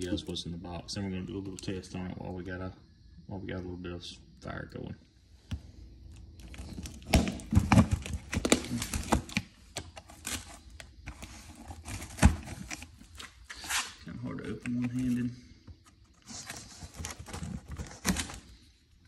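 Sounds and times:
cardboard scraping and tearing: 0:06.5 - 0:09.4, 0:10.0 - 0:14.0, 0:16.2 - 0:18.6.

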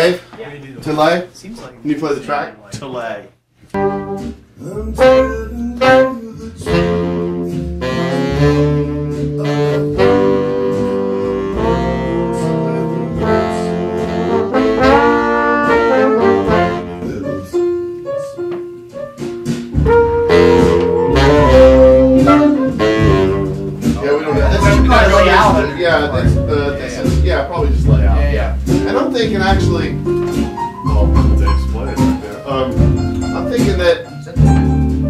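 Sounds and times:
horn section playing: 0:03.8 - 0:17.8, 0:19.8 - 0:33.6.

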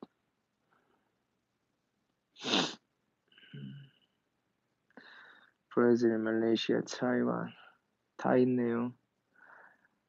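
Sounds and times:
man sneezing: 0:02.4 - 0:02.8.

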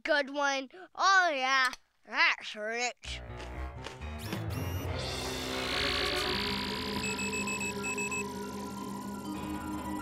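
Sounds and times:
quick high beeps: 0:04.2 - 0:04.9.

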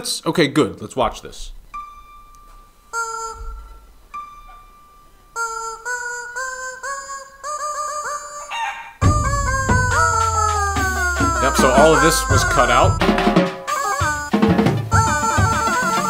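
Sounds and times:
rubber chicken squawks: 0:05.4 - 0:12.7
marching drums: 0:09.0 - 0:16.0.

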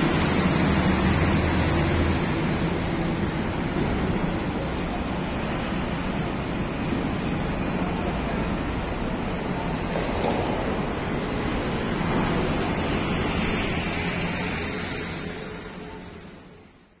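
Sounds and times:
road traffic noise: 0:00.0 - 0:17.0.

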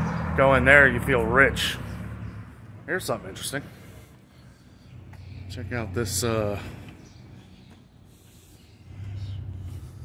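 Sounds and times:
distant engine rumble: 0:00.0 - 0:10.0.

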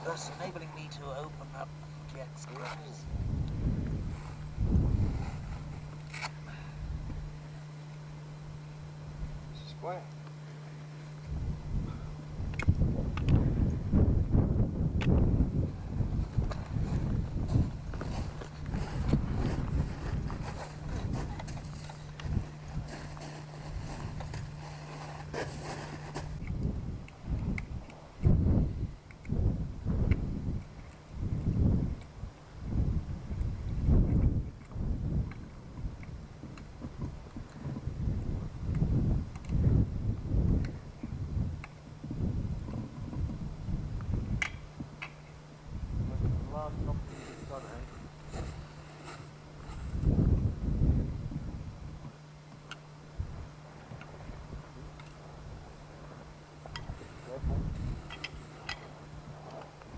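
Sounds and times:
steady low hum: 0:00.0 - 0:59.9
wind buffeting microphone: 0:03.0 - 0:06.0, 0:11.2 - 0:24.7, 0:25.3 - 0:45.0, 0:45.6 - 0:52.1, 0:56.7 - 0:59.9.

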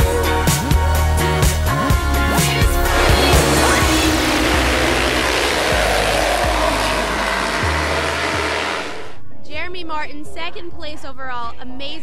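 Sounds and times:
background music: 0:00.0 - 0:12.0
dirt bikes revving: 0:02.7 - 0:09.2.

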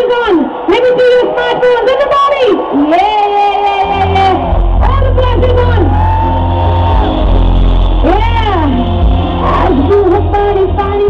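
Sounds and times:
crowd shouting: 0:00.0 - 0:11.0
loud live concert music: 0:02.7 - 0:11.0.

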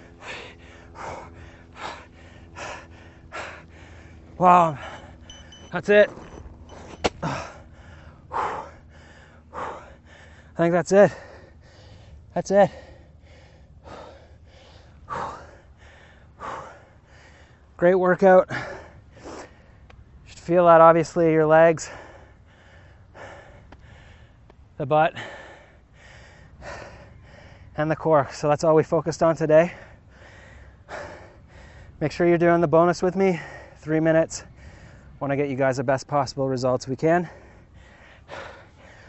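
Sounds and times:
man breathing hard: 0:00.0 - 0:17.8, 0:18.4 - 0:19.9, 0:21.7 - 0:27.8, 0:29.6 - 0:32.0, 0:33.3 - 0:35.2, 0:37.2 - 0:39.0.

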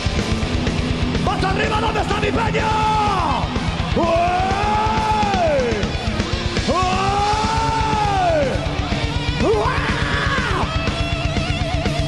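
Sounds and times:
fast pounding drum beat: 0:00.0 - 0:12.0
live heavy metal band: 0:00.0 - 0:12.0.

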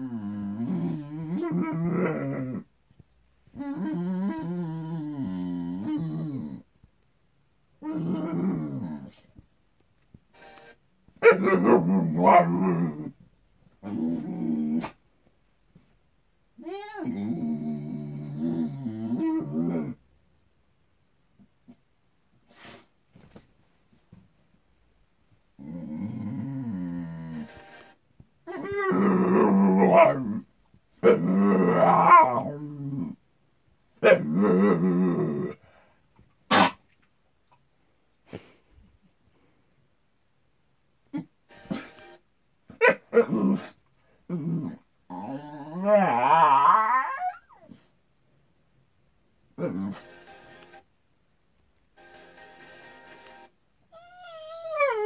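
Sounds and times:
dog whining: 0:00.0 - 0:02.6, 0:03.5 - 0:06.6, 0:07.8 - 0:09.2, 0:16.6 - 0:20.0, 0:28.4 - 0:30.4, 0:44.7 - 0:47.9, 0:53.9 - 0:55.0
faint music from television: 0:10.2 - 0:12.8, 0:25.7 - 0:30.2, 0:41.4 - 0:43.3, 0:49.6 - 0:51.0, 0:51.9 - 0:53.7
dog crying: 0:28.5 - 0:29.0, 0:45.8 - 0:47.8, 0:53.9 - 0:55.0.

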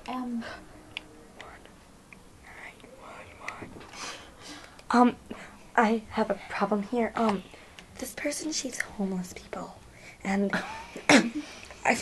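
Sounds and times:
person whispering: 0:01.3 - 0:01.8, 0:02.4 - 0:03.9.

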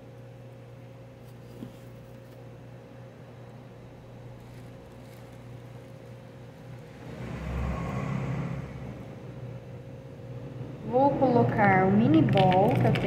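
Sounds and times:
low room hum: 0:00.0 - 0:13.0
low rumble: 0:06.8 - 0:11.7.

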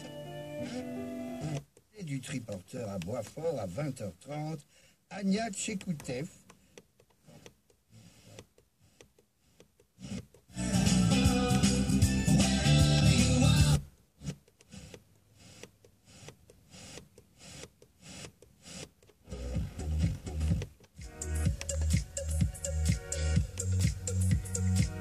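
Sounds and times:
radio station music: 0:10.6 - 0:13.8, 0:19.3 - 0:25.0.

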